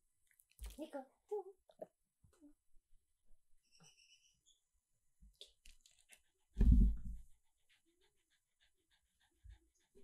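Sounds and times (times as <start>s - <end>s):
low thump: 6.6s - 7.3s
dog panting softly: 7.2s - 10.0s.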